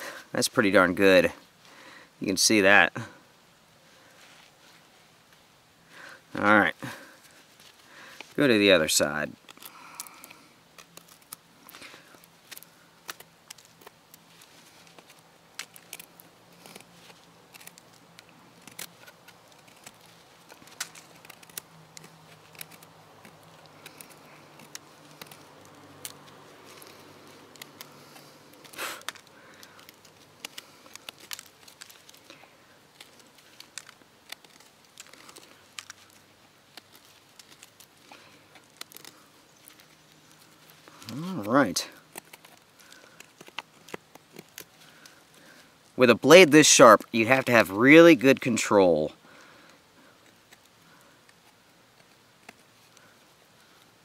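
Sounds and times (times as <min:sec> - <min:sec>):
wood snapping: 0:09.4 - 0:46.0.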